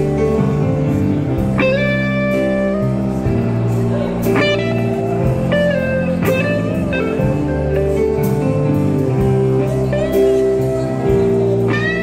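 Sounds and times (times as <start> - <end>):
bass and drums: 0.0 - 12.0
electric guitar lead notes bending: 0.0 - 12.0
organ chords: 0.0 - 12.0.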